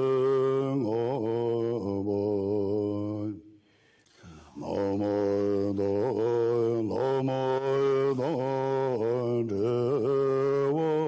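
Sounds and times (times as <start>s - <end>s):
man chanting in deep voice: 0.0s - 3.4s, 4.4s - 11.0s.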